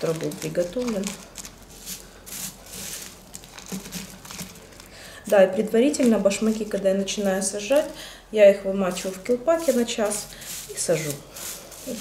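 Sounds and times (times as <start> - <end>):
potting mix rustling and crunching: 0.0 - 12.0.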